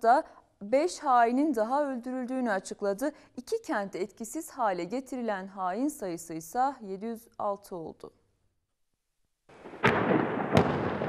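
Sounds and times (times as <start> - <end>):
sharp bangs: 9.5 - 11.0
explosions and gunfire: 9.6 - 11.0.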